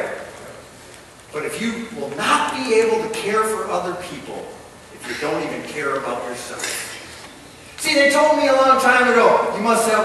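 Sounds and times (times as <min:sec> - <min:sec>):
man preaching: 0:01.3 - 0:06.8, 0:07.8 - 0:10.0.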